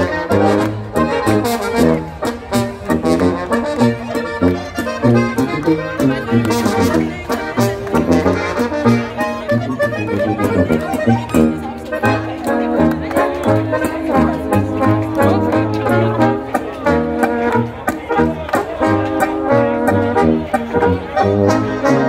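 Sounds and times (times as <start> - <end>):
folk dance band playing: 0.0 - 22.0
tuba bass beat: 0.0 - 22.0.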